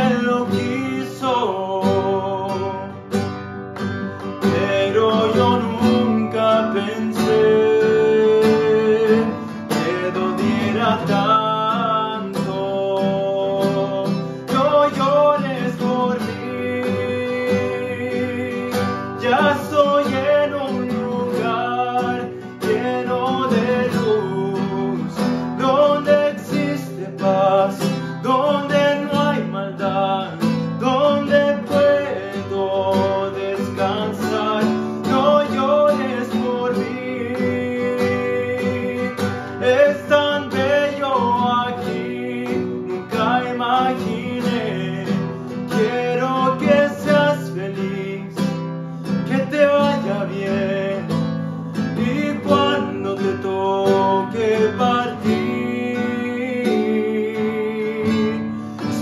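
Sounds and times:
acoustic guitar strummed: 0.0 - 59.0
man singing: 0.0 - 59.0.

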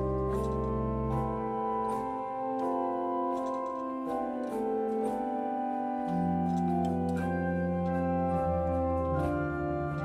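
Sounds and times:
pipe organ chords: 0.0 - 10.0.

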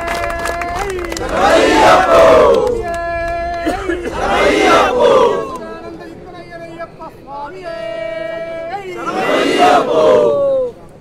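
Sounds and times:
crowd chanting in unison: 1.0 - 2.8, 3.7 - 5.6, 8.9 - 10.4.

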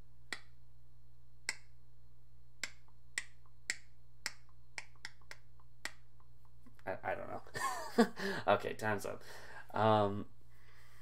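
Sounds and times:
fingers snapping: 0.3 - 0.6, 1.4 - 1.7, 2.6 - 6.8.

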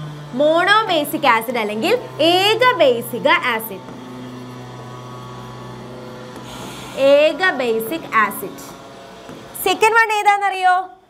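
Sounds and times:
steady low hum: 0.0 - 10.5.

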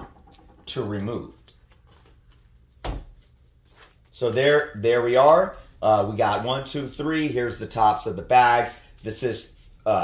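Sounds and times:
faint handling sounds: 0.4 - 5.8.

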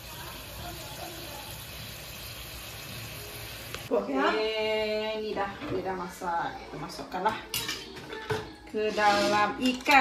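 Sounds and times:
sauce boiling in a wok: 0.0 - 3.9.

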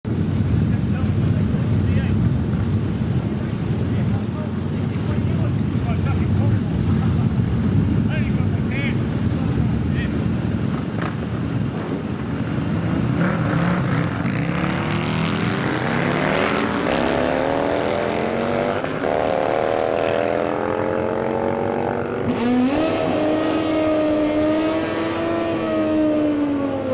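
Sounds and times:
motorcycle engines revving: 0.1 - 26.9.

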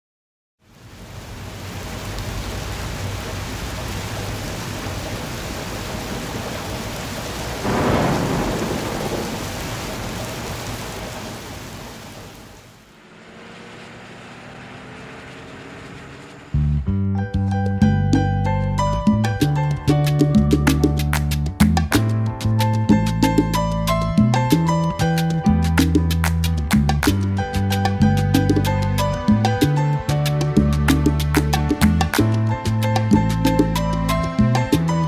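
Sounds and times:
steady rain: 0.6 - 16.6
thunder rumble: 2.1 - 13.0.

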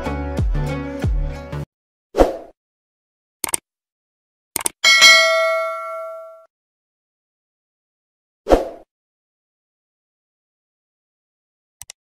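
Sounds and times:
notification bell ding: 4.8 - 6.5
mouse clicks: 11.8 - 12.0.

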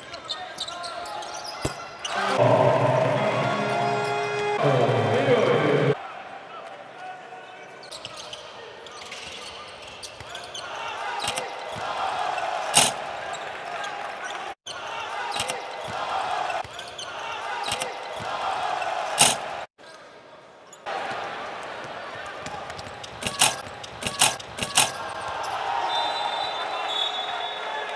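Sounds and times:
arena crowd noise: 0.0 - 27.9.

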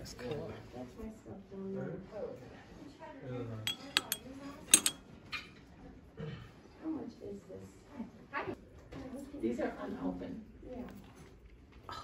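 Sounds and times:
metal ladle clinking on glass bowl: 3.7 - 5.0.

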